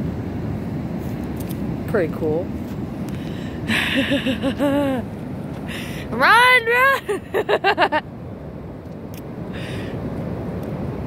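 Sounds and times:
ocean surf rushing: 0:00.0 - 0:11.0.

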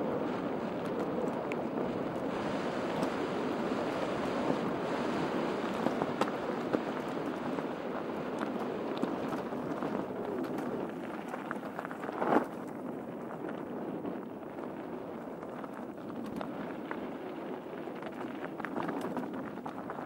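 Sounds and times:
bike clicks and rattles: 0:00.0 - 0:20.0
bike tyres on loose gravel: 0:00.0 - 0:20.0
wind on microphone: 0:00.0 - 0:20.0.

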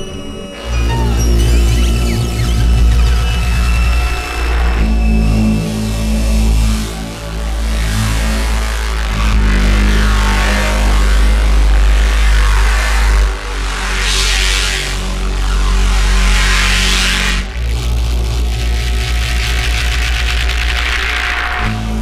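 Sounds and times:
electronic music: 0:00.0 - 0:13.2
deep sustained bass line: 0:00.0 - 0:22.0.

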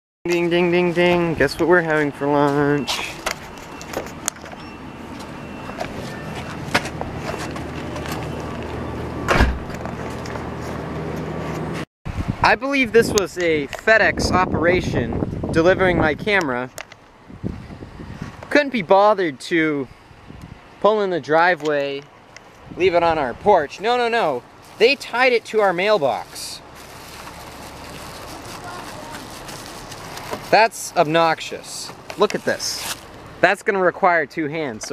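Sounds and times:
street background noise: 0:00.3 - 0:34.9.

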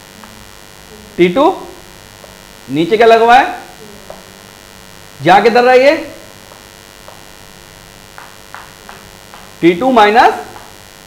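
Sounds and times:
electrical mains hum: 0:00.0 - 0:11.0
chalk ticking on blackboard: 0:08.0 - 0:09.8.

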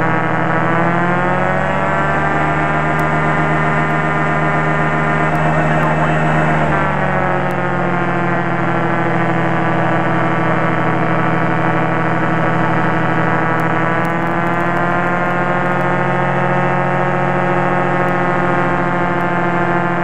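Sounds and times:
propeller aircraft engine droning: 0:00.0 - 0:20.0.

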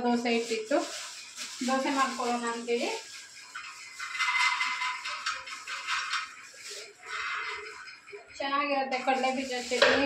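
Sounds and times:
peanuts rattling onto metal plate: 0:00.1 - 0:08.0.

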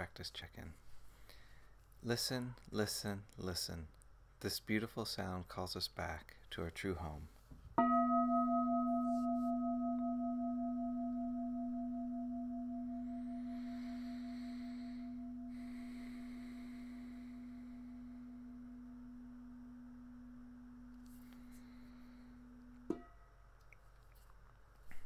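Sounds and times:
meditation bell ringing: 0:07.8 - 0:23.2.

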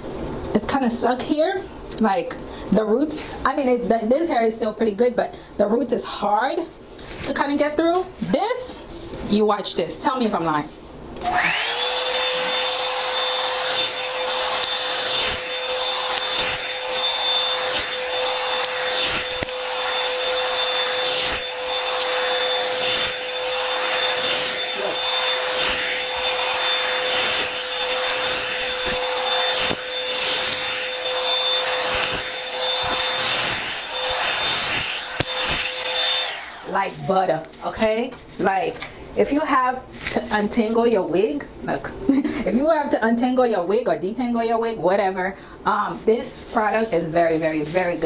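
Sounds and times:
hot air brush motor whine: 0:11.2 - 0:37.2
brush dragged through hair: 0:11.9 - 0:37.3.

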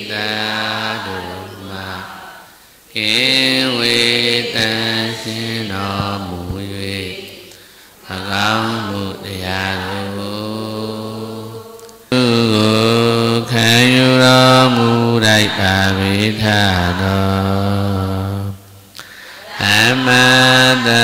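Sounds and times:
low-voiced devotional chanting: 0:00.0 - 0:21.0.

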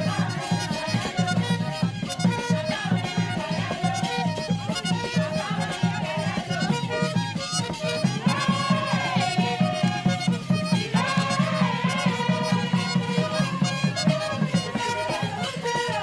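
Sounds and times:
fast steady drumming: 0:00.0 - 0:16.0.

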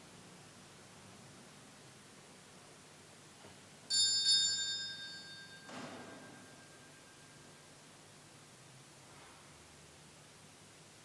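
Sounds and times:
small metal bell ringing: 0:03.9 - 0:07.6.

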